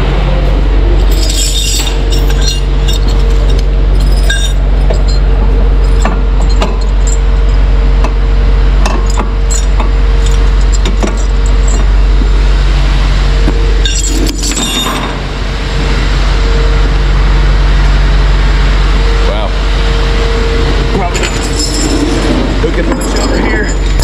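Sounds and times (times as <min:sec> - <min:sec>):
engine idling hum: 0:00.0 - 0:24.0
chains clinking on steel deck: 0:01.0 - 0:07.3, 0:08.8 - 0:11.9, 0:13.8 - 0:15.1, 0:21.1 - 0:22.2, 0:22.8 - 0:24.0.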